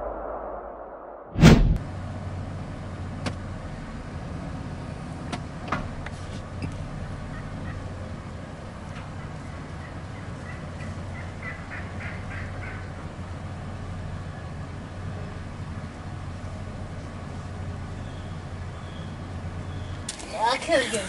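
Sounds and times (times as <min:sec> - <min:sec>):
steady low hum: 0:00.0 - 0:04.2
turkey calls: 0:07.0 - 0:08.1, 0:09.0 - 0:13.2.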